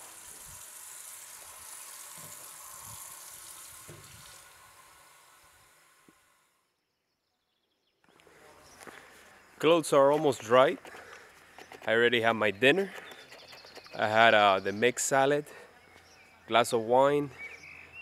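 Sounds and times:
tap water running into sink: 0:00.0 - 0:06.2.

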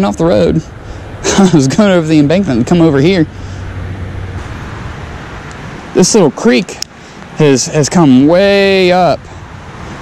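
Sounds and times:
highway traffic drone: 0:00.0 - 0:10.0.

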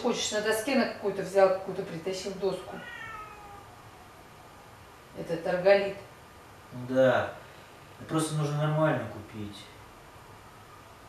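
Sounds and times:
high-pitched animal call: 0:02.8 - 0:04.2.

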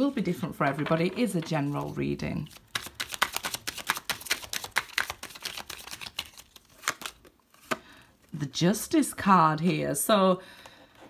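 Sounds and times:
cards being shuffled: 0:01.6 - 0:07.8.

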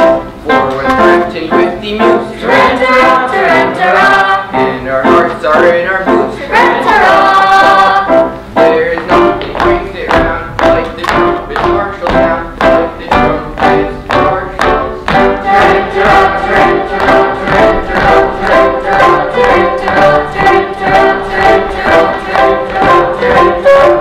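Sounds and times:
instrumental accompaniment: 0:00.0 - 0:24.0
chorus of young voices singing: 0:02.3 - 0:09.3, 0:12.2 - 0:24.0.

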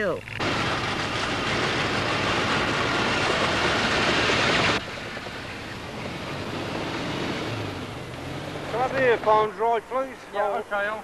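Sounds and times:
tracked snow vehicle engine: 0:00.4 - 0:11.0.

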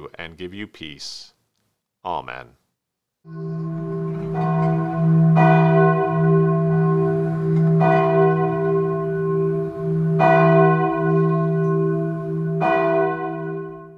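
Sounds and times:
bell tolling: 0:03.3 - 0:13.9
steady low drone: 0:03.3 - 0:13.9.

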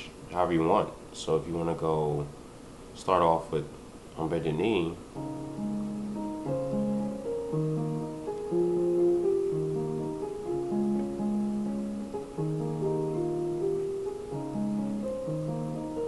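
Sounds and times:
digital keyboard playing chords: 0:05.2 - 0:16.0.

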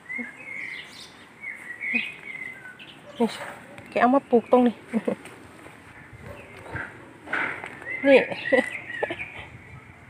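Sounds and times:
bird calling: 0:00.0 - 0:10.0.

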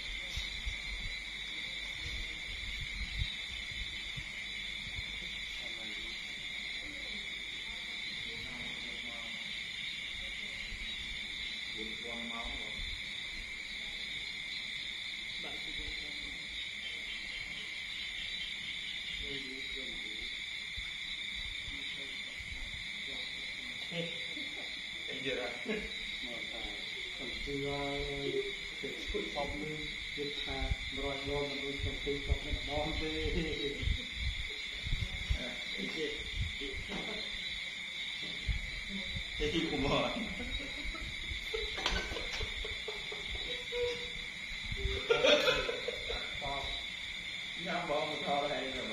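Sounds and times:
indistinct voices talking: 0:00.0 - 0:48.9
night insects chirring: 0:00.0 - 0:48.9.

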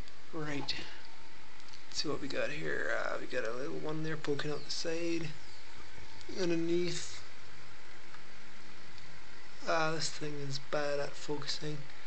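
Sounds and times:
low hum: 0:00.0 - 0:12.0
steady background hiss: 0:00.0 - 0:12.0.

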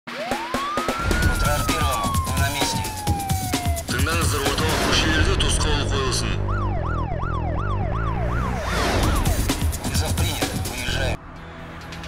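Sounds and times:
electronic music beat with heavy bass: 0:00.1 - 0:06.2, 0:07.7 - 0:11.2
siren wail: 0:00.1 - 0:09.5
voice fragments: 0:03.9 - 0:06.5.

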